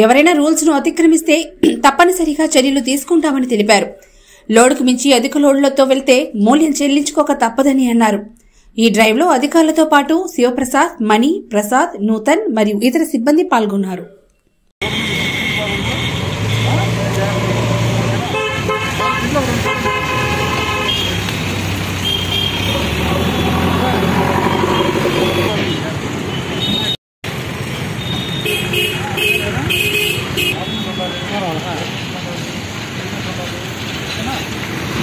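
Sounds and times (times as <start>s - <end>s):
steady traffic noise: 14.5s - 35.0s
vehicle horns honking: 14.8s - 21.3s, 22.0s - 27.0s, 27.8s - 32.2s.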